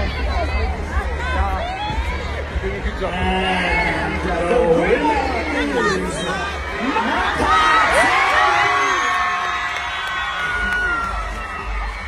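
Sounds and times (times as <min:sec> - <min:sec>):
voices talking over one another: 0:00.0 - 0:08.3.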